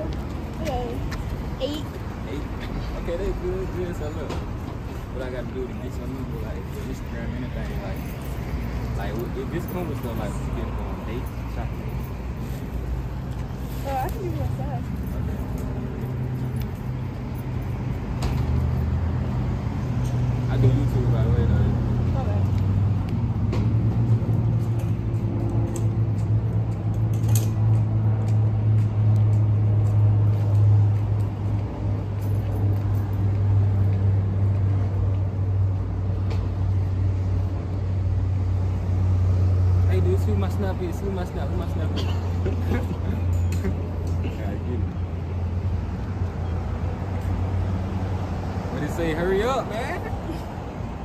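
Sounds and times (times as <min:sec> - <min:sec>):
background traffic drone: 0:00.0 - 0:51.0
outdoor background noise: 0:00.0 - 0:51.0.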